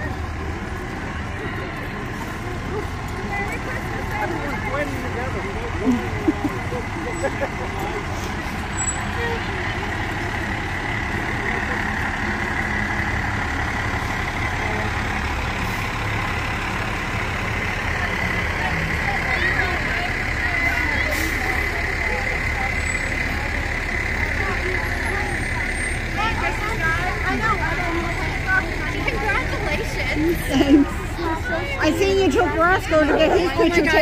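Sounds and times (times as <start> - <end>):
fire truck engine running: 0.0 - 34.0
people talking: 0.0 - 34.0.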